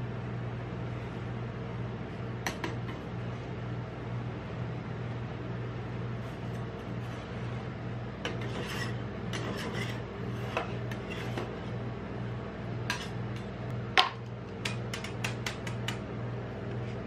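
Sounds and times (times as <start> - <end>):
low steady hum: 0.0 - 17.0
metal spatula scraping steel plate: 8.2 - 11.6.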